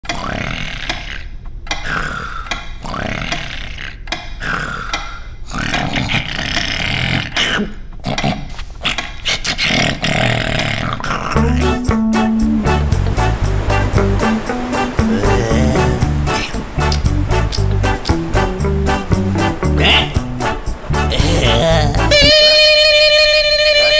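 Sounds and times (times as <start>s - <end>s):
cartoon snoring: 0.1s - 11.6s, 15.0s - 16.6s, 21.1s - 22.3s
background music: 11.4s - 22.8s.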